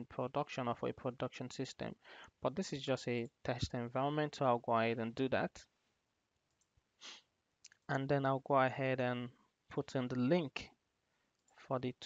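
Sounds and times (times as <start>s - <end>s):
person speaking: 0.0s - 5.6s, 7.0s - 10.7s
soft breath: 2.0s - 2.4s
faint clicks: 6.4s - 6.9s, 7.6s - 7.9s, 11.3s - 11.6s.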